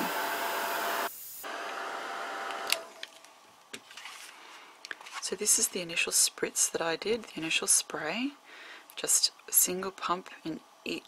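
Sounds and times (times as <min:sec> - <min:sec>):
heat gun blowing: 0:00.0 - 0:02.9.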